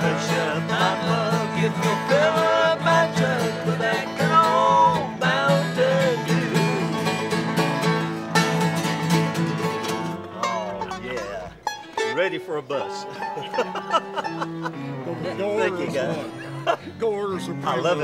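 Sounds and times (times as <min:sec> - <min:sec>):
bluegrass band playing: 0:00.0 - 0:18.0.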